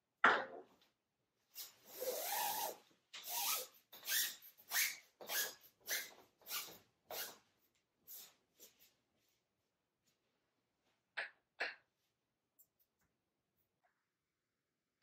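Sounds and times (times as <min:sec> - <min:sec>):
curtain sliding along a rod: 0:01.6 - 0:07.4.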